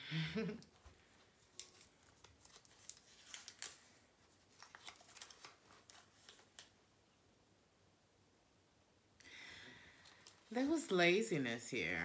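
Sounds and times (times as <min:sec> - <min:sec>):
cards rustling: 0:00.7 - 0:06.8.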